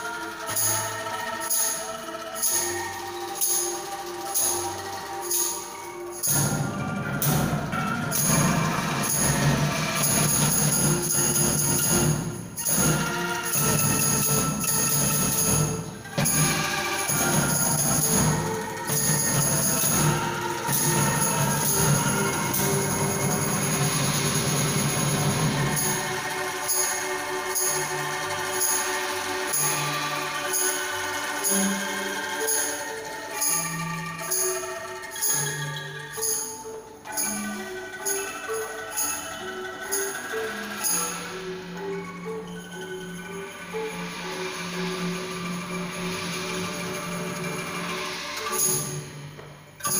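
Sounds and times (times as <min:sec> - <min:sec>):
angklungs rattling tremolo: 0:00.0 - 0:49.9.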